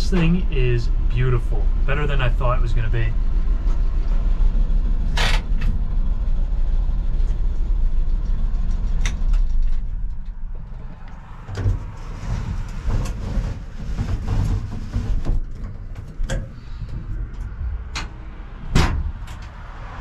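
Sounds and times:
knocks and rattles: 8.0 - 19.6.

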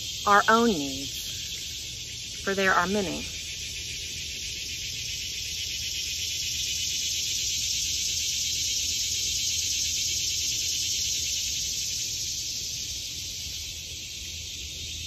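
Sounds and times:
insects chirring: 0.0 - 15.0.

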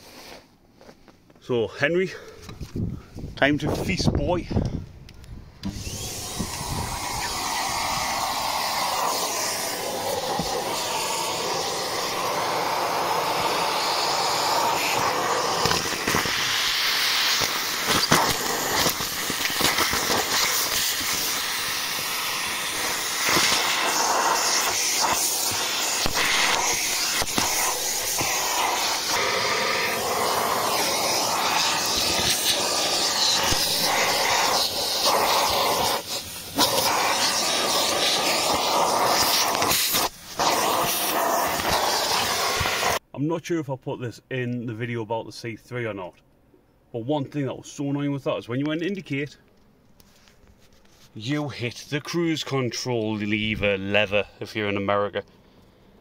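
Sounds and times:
vacuum cleaner running: 5.6 - 43.0.

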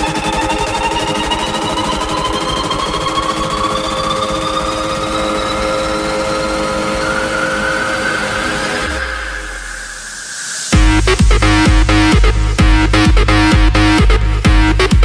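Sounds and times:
electronic dance music: 0.0 - 15.0.

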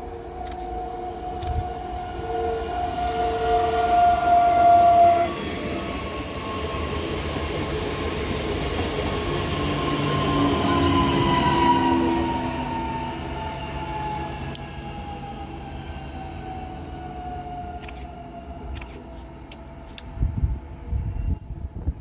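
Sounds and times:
electric train whine: 0.0 - 22.0
train rail rumble: 0.0 - 22.0.

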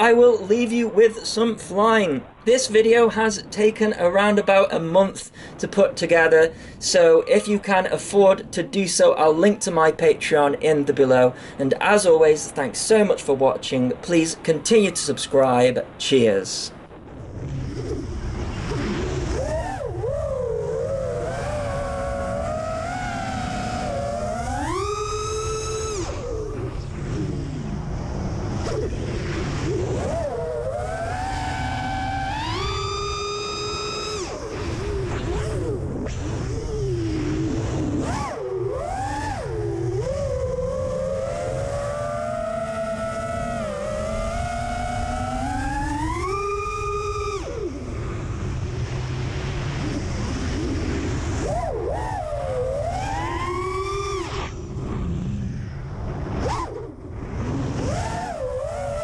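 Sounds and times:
drone motors and propellers whining: 0.0 - 59.0
wind noise on microphone: 16.7 - 59.0.

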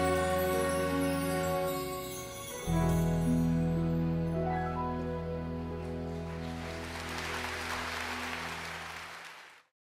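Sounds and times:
audience applause: 6.3 - 9.7.

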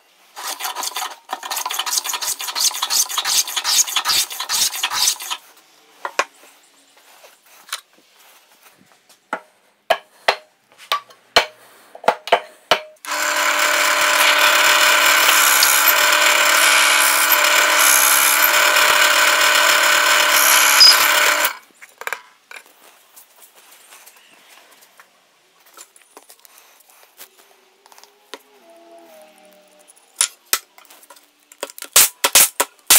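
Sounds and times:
drill press whining: 13.1 - 21.6.

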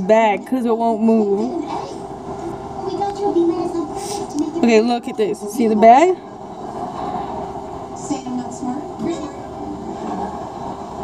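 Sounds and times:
faint voices murmuring: 0.0 - 11.0.

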